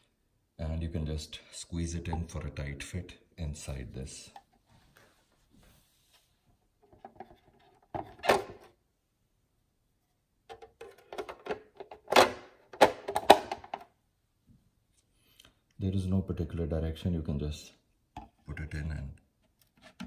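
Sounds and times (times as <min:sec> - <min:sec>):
plastic parts knocking and clicking: 0:10.5 - 0:14.0.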